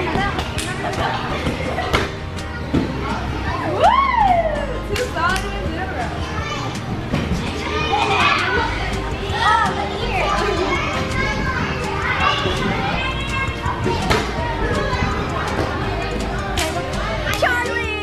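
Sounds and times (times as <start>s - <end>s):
children calling and chattering: 0.0s - 18.0s.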